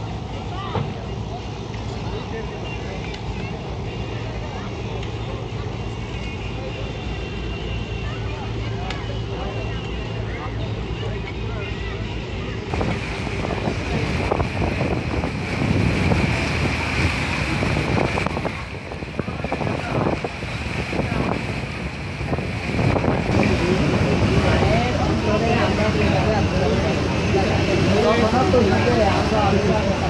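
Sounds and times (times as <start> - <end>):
boat engine drone: 0.0 - 30.0
faint voices: 0.0 - 30.0
wind buffeting microphone: 12.6 - 30.0.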